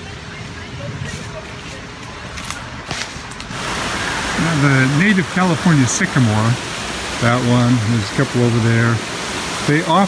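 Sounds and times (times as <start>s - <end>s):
steady hiss: 2.9s - 10.0s.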